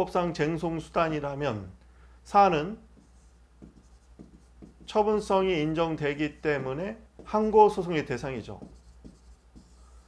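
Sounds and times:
stylus tapping and scratching screen: 0:02.9 - 0:10.0.

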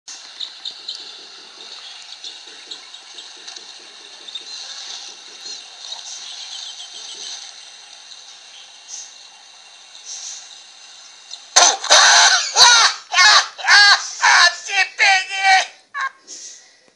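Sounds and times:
quiet hiss: 0:00.1 - 0:16.9
high-pitched screaming voice: 0:11.6 - 0:16.1.

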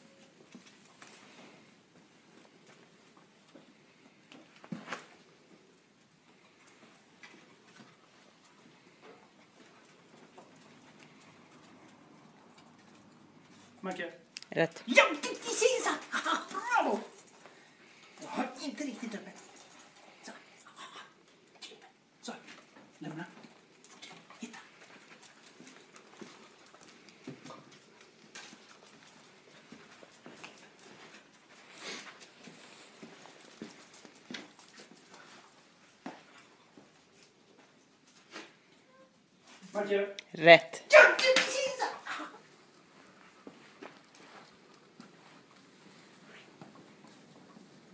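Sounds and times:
dog paws on concrete: 0:00.0 - 0:40.0, 0:40.8 - 0:47.9.

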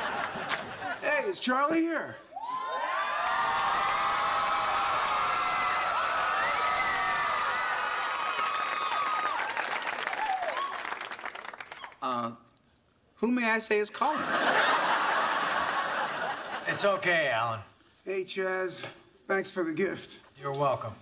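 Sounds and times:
audience cheering and whooping: 0:02.3 - 0:12.0
audience applauding: 0:02.6 - 0:12.1.

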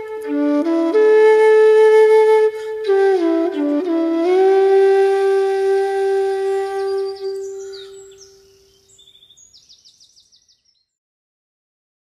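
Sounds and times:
flute music: 0:00.0 - 0:08.6.

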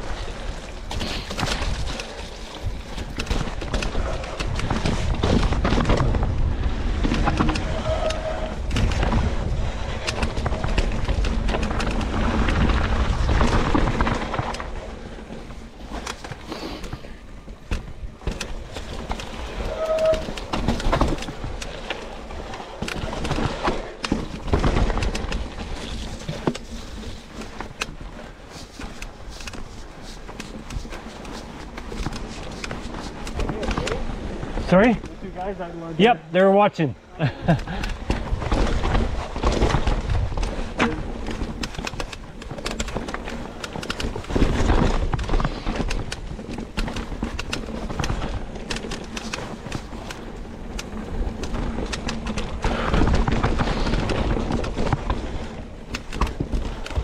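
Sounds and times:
bike tyres on dirt and rock: 0:00.0 - 0:57.0
bike clattering over rocks: 0:00.4 - 0:35.4, 0:37.4 - 0:57.0.

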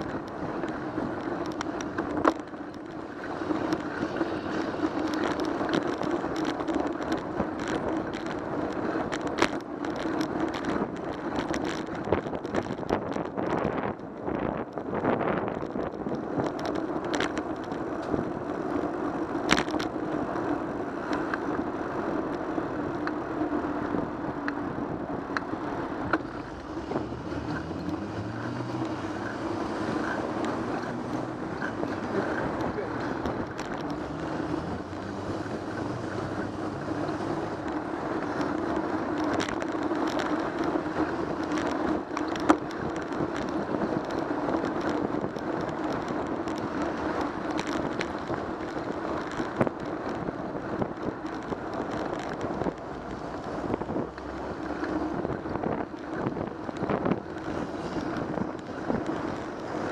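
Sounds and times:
city traffic: 0:00.0 - 0:59.9
tyres humming on road: 0:00.0 - 0:59.9
wind on microphone: 0:00.0 - 0:59.9
vehicle engine accelerating: 0:25.7 - 0:42.2.

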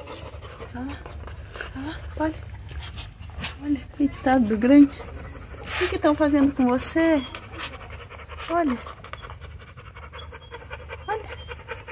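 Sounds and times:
dog panting: 0:00.0 - 0:11.9.

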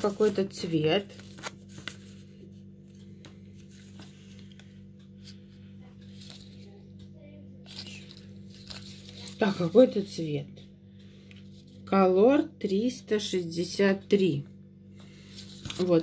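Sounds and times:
small paper crackles: 0:00.0 - 0:02.3, 0:06.0 - 0:06.8, 0:07.6 - 0:10.0, 0:15.3 - 0:16.0
paper band crinkling: 0:00.0 - 0:02.4, 0:03.0 - 0:06.8, 0:07.6 - 0:10.1, 0:15.2 - 0:16.0
steady low hum: 0:00.0 - 0:16.0.

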